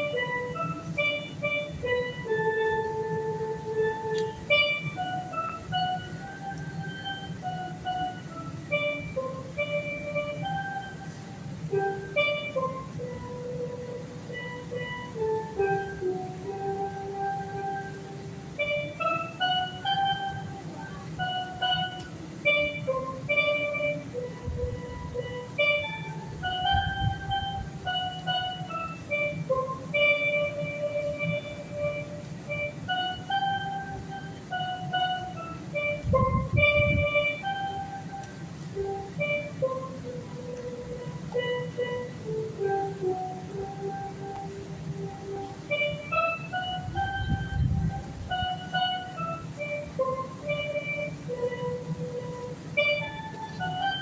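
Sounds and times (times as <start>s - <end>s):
steelpan slow melody: 0.0s - 54.0s.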